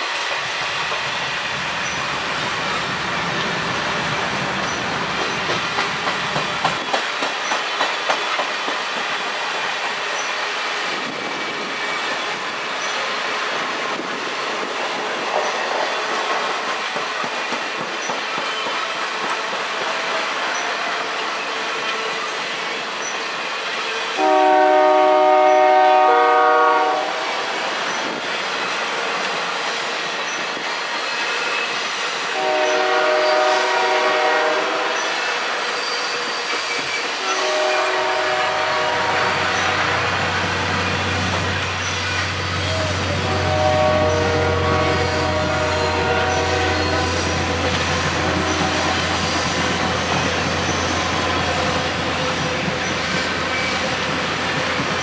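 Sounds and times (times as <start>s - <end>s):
train wheels clicking over rails: 0.0s - 24.3s, 27.4s - 55.0s
train air horn chord: 24.2s - 27.3s, 32.4s - 35.0s, 37.2s - 40.2s, 42.7s - 47.3s, 48.0s - 49.4s.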